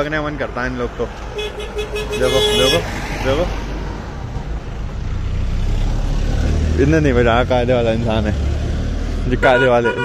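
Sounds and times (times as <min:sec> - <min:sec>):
vehicle engine rumbling: 0:00.0 - 0:10.0
man talking: 0:02.1 - 0:03.6, 0:09.3 - 0:10.0.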